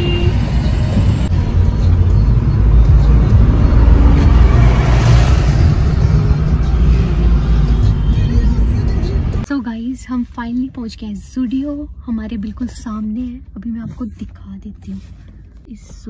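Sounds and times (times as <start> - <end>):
truck passing: 0.0 - 9.4
road and engine rumble: 0.0 - 16.0.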